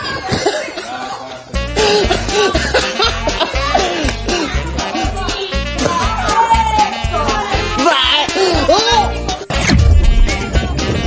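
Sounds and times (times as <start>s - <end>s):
voices: 0.0s - 9.4s
coughing: 0.2s - 1.0s, 1.6s - 5.2s, 7.7s - 9.2s
laughter: 2.3s - 4.0s
music with bass-heavy beat: 9.2s - 11.0s.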